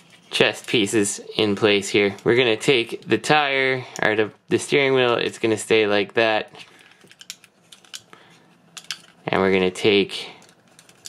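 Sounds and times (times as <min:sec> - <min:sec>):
plastic toy parts clicking: 0:06.9 - 0:08.1.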